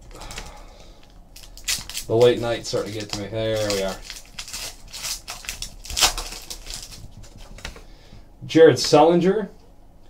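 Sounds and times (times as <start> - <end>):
foil wrapper crinkling: 0.0 - 7.9.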